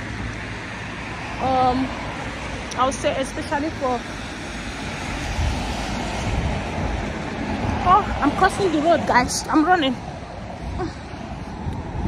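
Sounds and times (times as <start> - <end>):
road traffic passing: 0.0 - 12.0.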